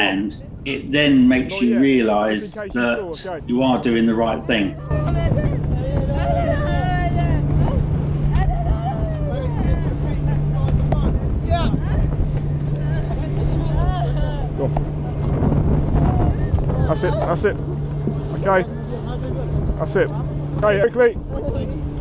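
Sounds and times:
boat engine running: 0.0s - 22.0s
people calling out: 3.6s - 10.6s.

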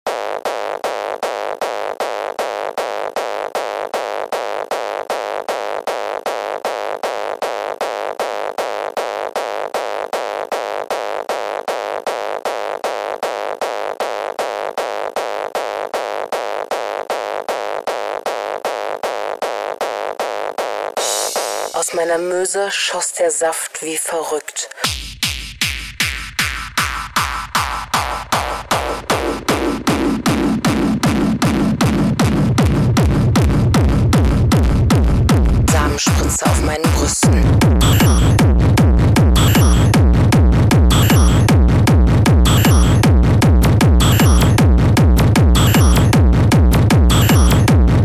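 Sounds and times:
synthesizer pulse: 35.7s - 48.0s.

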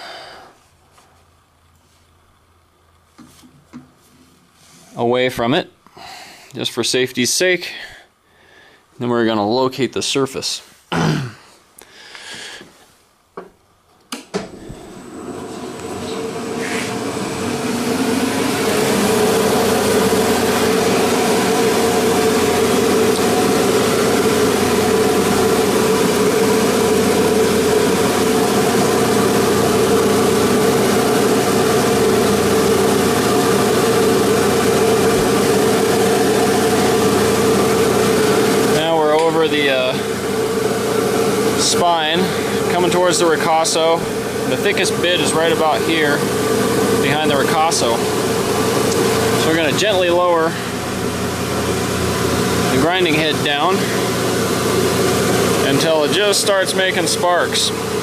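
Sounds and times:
grinder motor humming: 14.6s - 58.0s.

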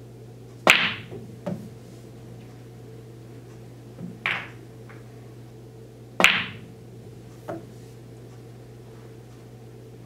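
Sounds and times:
pool balls clicking: 0.6s - 2.6s, 3.9s - 5.1s, 6.2s - 7.8s.

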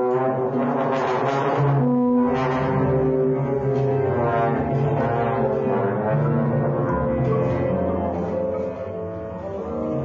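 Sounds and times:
trombone playing low notes: 0.0s - 10.0s
steady low tone: 1.6s - 10.0s.

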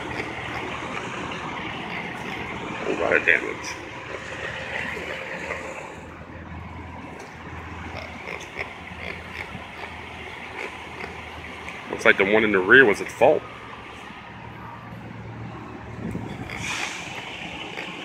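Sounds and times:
low engine hum: 0.0s - 18.0s
street traffic noise: 0.0s - 18.0s.

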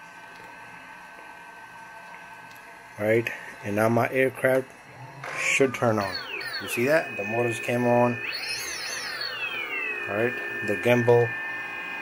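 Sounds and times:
drone motors whining: 4.4s - 12.0s.

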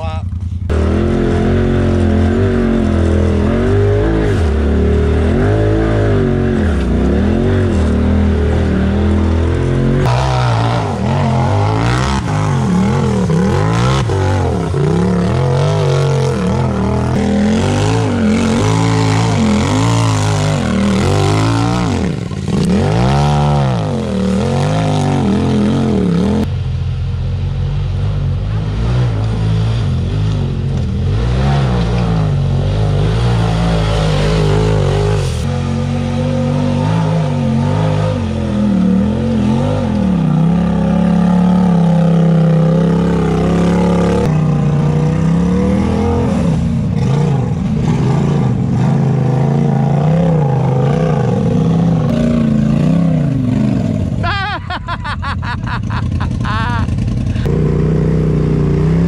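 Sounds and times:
off-road engines revving: 0.0s - 59.0s.

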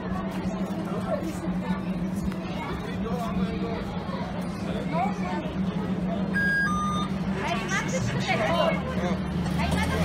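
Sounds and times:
card reader two-note beep: 6.4s - 7.1s.

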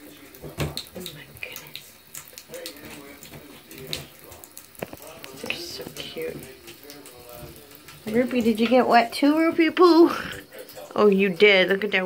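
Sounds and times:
water trickling and splashing: 0.0s - 12.0s.

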